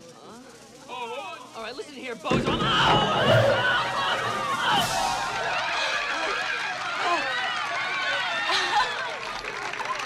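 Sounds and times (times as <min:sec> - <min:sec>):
audience cheering and calling out: 0:02.3 - 0:10.0.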